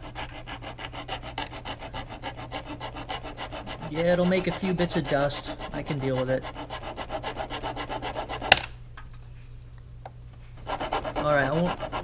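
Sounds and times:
hand file rasping on plastic: 0:00.0 - 0:08.5, 0:10.6 - 0:12.0.

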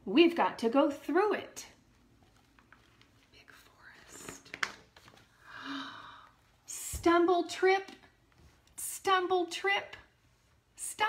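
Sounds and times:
woman whispering: 0:03.3 - 0:04.5
breathing: 0:05.3 - 0:06.4.

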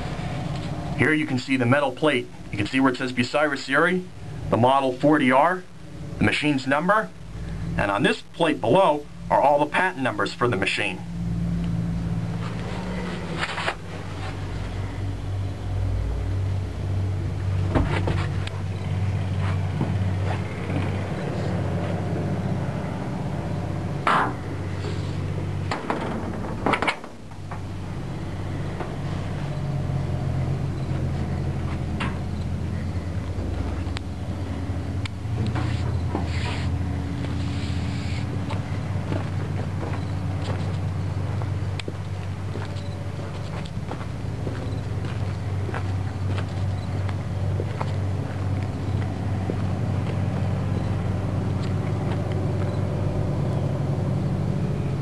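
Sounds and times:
low rumble: 0:00.0 - 0:55.0
knocks and clanks on steel: 0:24.0 - 0:24.4, 0:25.6 - 0:27.7.

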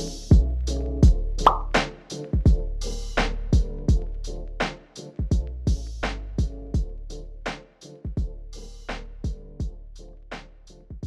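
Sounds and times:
sustained bass line: 0:00.0 - 0:01.8, 0:02.5 - 0:04.6, 0:05.4 - 0:07.5
hi-hat strokes: 0:00.0 - 0:11.0.

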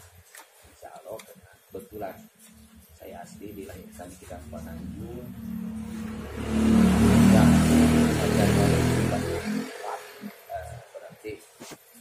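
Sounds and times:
vehicle engine passing by: 0:02.6 - 0:11.0.

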